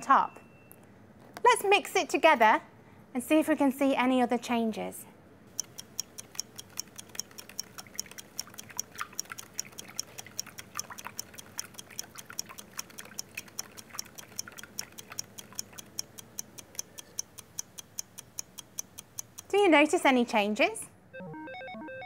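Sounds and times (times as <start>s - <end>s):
steady ticking: 5.5s - 20.2s
spoon stirring in plastic cup: 6.4s - 16.0s.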